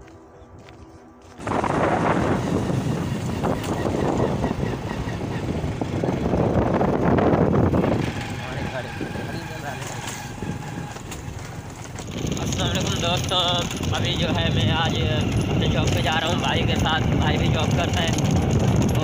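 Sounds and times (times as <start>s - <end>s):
wind rushing over microphone: 1.4s - 9.6s, 10.3s - 19.0s
motorcycle engine running: 1.4s - 19.0s.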